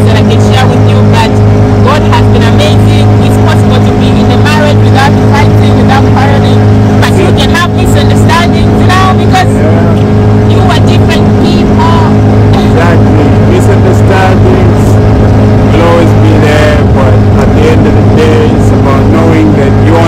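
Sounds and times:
boat motor droning: 0.0s - 20.0s.

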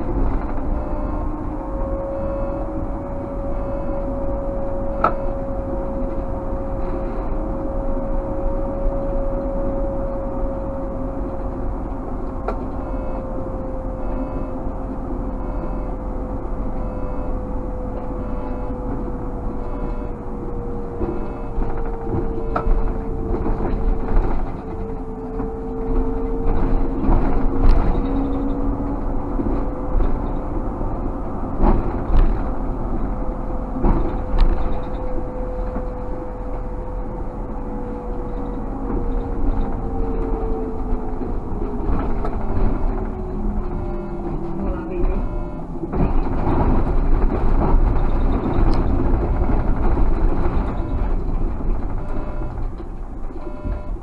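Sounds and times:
electric traction drive whine: 0.0s - 54.0s
road rumble: 0.0s - 54.0s.

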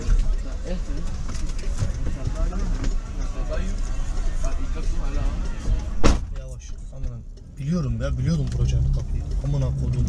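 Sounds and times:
car engine rumble: 0.0s - 10.0s.

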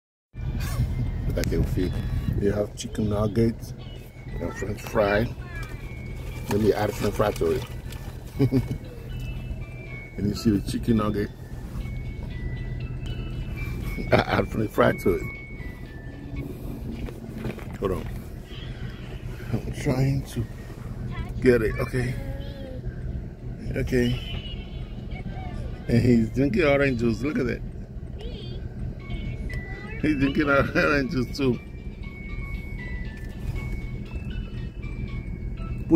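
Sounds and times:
car cabin hum: 0.4s - 35.9s
soft electronic game jingle: 8.4s - 18.4s, 28.9s - 35.9s.

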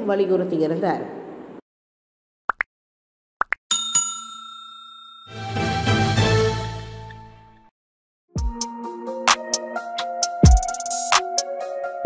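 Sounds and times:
bell-like chime: 3.7s - 5.6s.

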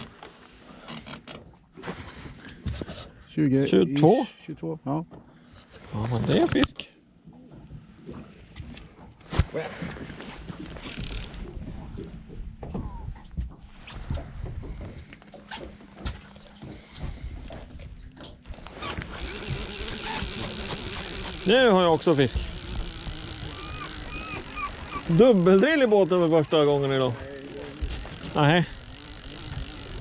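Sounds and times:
knocks and clatter on boat deck: 7.2s - 22.9s.

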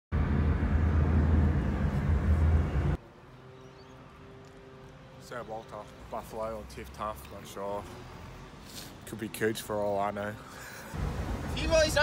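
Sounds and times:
vehicle road noise rumble: 0.1s - 12.0s.

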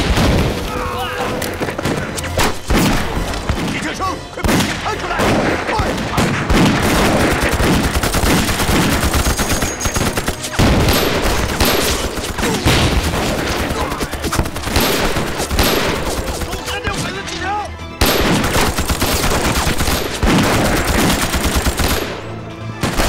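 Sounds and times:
scattered gunshots: 1.5s - 17.2s, 18.0s - 23.0s
machine-gun bursts: 6.7s - 16.8s, 18.0s - 22.2s.

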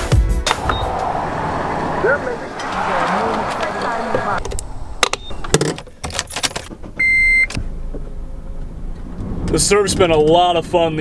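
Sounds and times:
electronic beep: 0.6s - 0.9s, 5.0s - 5.6s.

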